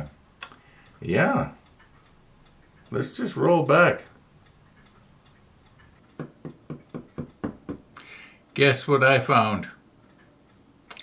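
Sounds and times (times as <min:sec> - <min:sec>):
clock-like ticks: 0:00.0 - 0:11.0.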